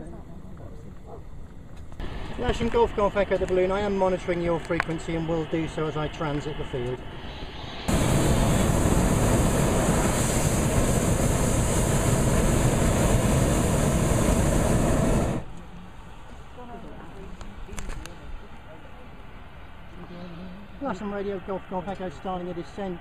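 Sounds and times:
propane burner roaring: 1.7s - 16.1s.

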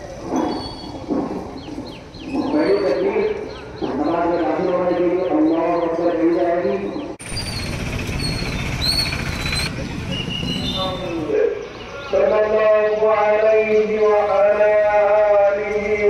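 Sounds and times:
birds chirping: 0.0s - 15.4s
man chanting: 2.4s - 7.2s, 10.4s - 16.0s.

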